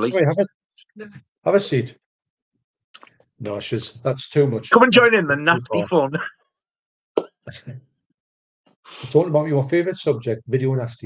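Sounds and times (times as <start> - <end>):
man speaking: 0.0 - 0.5, 1.5 - 2.0, 3.4 - 5.9, 9.1 - 11.0.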